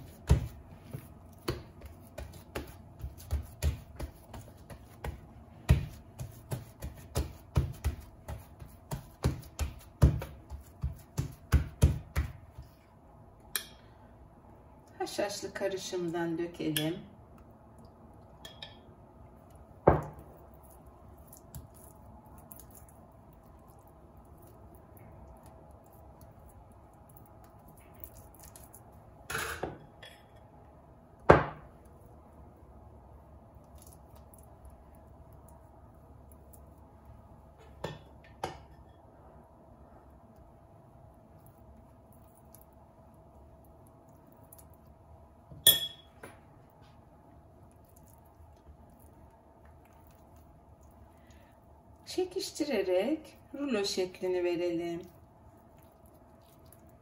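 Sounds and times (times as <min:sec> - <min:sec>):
metal spoon clinking glass bowl: 0:18.4 - 0:18.9, 0:45.6 - 0:46.2.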